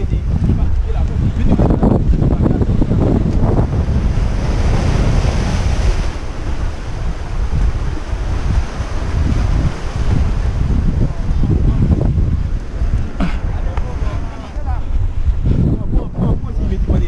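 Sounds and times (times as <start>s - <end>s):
sea surf breaking on rocks: 0.0s - 17.0s
wind buffeting microphone: 0.0s - 17.0s.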